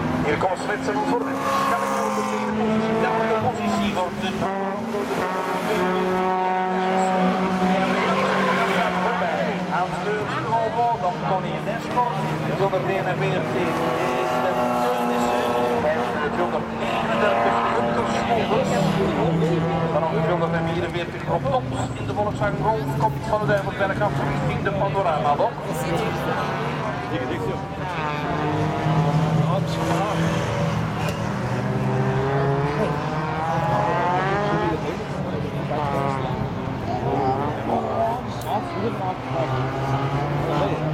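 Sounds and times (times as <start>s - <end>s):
racing car engines at high revs: 0.0s - 40.9s.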